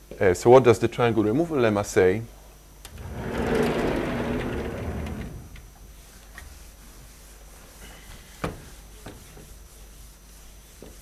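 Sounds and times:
chalkboard panel sliding on track: 2.9s - 5.7s.

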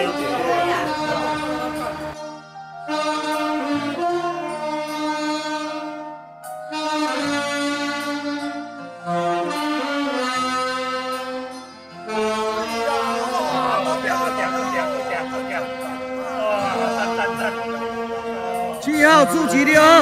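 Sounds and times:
saxophone ensemble playing slow melody: 0.0s - 20.0s.

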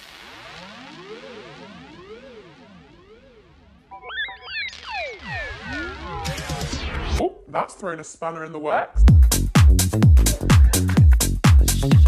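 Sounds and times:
synth tones sweeping in pitch: 0.2s - 7.2s
swooping synth glides: 0.5s - 7.2s.

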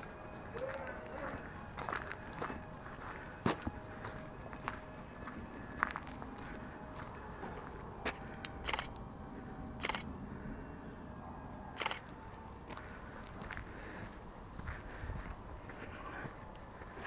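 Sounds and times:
footsteps on gravel: 0.0s - 8.3s, 12.6s - 17.0s.

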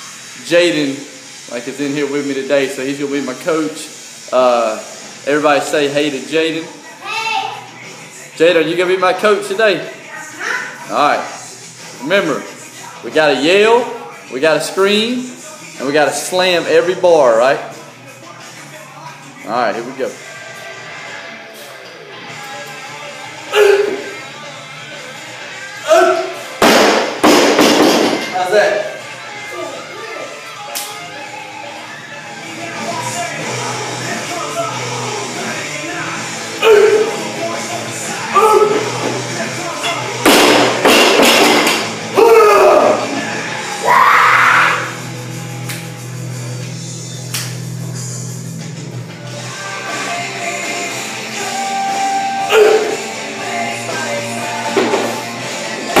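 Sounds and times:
rock music: 15.3s - 56.0s
person shouting: 25.8s - 26.3s, 36.6s - 37.1s, 38.4s - 38.8s, 42.2s - 43.0s, 52.4s - 53.0s
barbell crashing onto floor: 26.6s - 28.3s, 40.3s - 41.9s
loud shouts: 36.6s - 37.2s, 42.2s - 43.2s, 43.8s - 44.9s, 52.4s - 53.0s.

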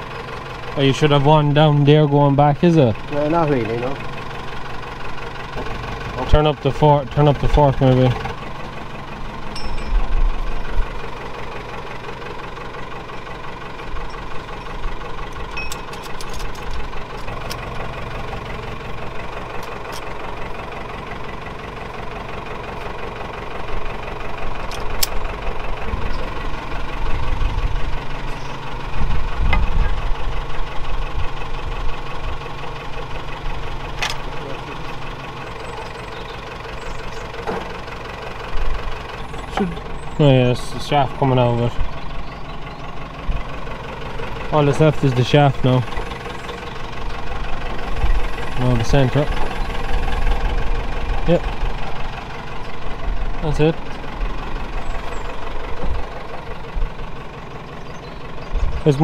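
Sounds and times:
diesel engine idling: 0.0s - 59.0s
sharp metal clinks: 9.5s - 10.2s, 15.5s - 16.4s.

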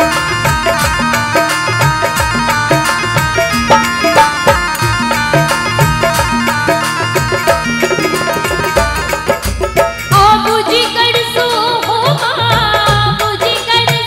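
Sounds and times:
sustained instrumental melody: 0.0s - 11.5s
fast drum rhythm: 0.0s - 14.0s.

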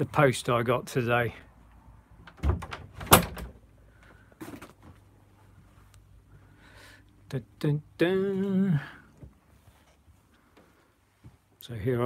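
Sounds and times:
door latch click and thud: 2.2s - 3.6s.

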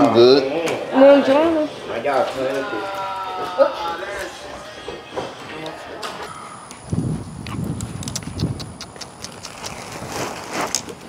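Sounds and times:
plastic bags rustling: 9.7s - 11.0s.

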